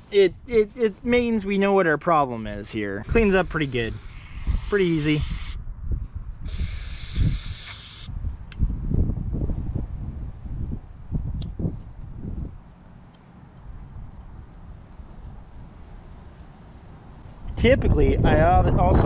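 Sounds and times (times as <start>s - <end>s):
aerosol spray burst: 3.0s - 5.6s, 6.4s - 8.1s.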